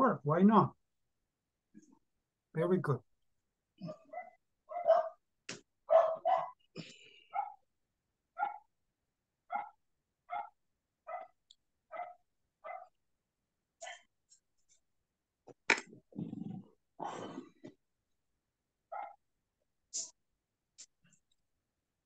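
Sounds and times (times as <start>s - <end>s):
dog barking: 3.9s - 5.2s, 5.9s - 6.6s, 7.3s - 7.6s, 8.4s - 8.7s, 9.5s - 13.0s, 18.9s - 19.2s.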